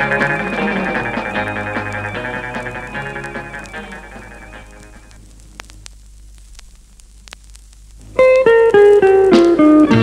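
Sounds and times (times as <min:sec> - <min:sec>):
vinyl clicks: 0:00.0 - 0:10.0
vinyl record hiss: 0:00.0 - 0:10.0.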